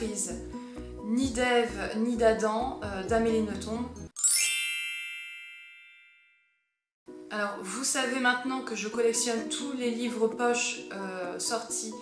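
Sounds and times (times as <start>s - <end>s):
bright chime ringing: 4.2s - 6.5s.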